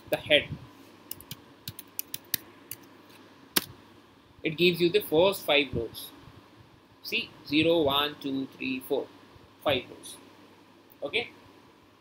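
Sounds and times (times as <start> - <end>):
keyboard keystrokes: 1.1 - 2.8.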